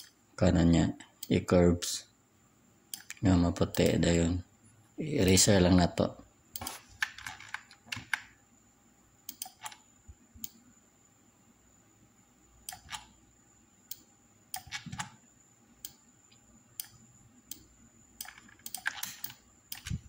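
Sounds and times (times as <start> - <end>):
mouse and keyboard clicks: 9.3 - 9.8, 12.7 - 13.1, 14.6 - 15.2, 18.2 - 20.0.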